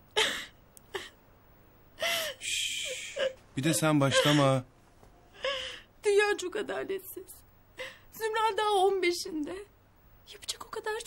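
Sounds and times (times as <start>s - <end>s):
woman crying: 0.2s - 1.2s, 2.0s - 4.6s.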